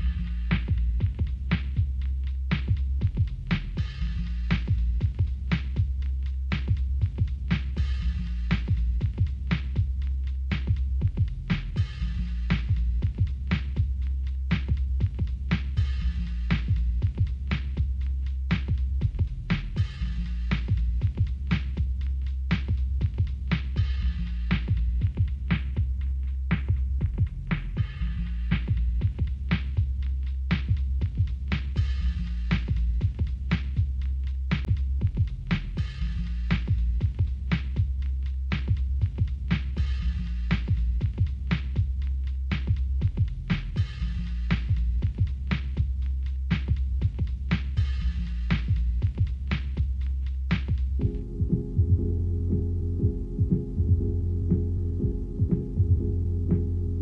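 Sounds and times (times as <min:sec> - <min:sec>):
instrumental pop music: 0:00.0 - 0:57.0.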